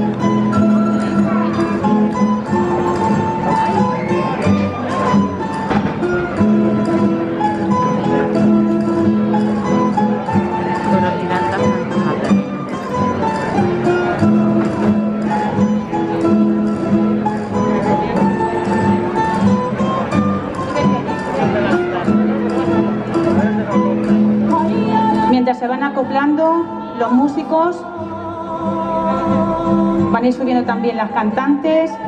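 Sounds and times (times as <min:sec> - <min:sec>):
folk string band playing: 0:00.0 - 0:32.0
person singing: 0:23.2 - 0:32.0.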